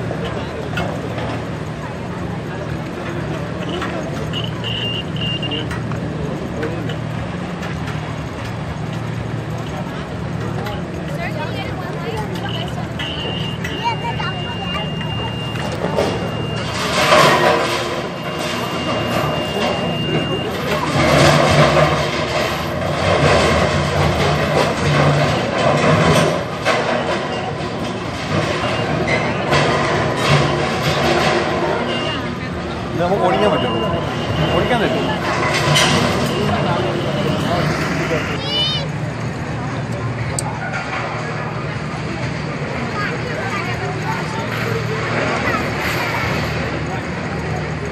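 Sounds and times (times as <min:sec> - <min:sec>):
indistinct voices: 0:00.0 - 0:47.9
vehicle engine running: 0:00.0 - 0:47.9.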